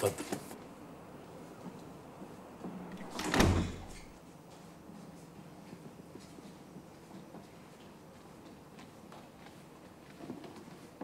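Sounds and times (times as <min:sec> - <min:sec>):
wooden door shutting: 0:02.9 - 0:04.2.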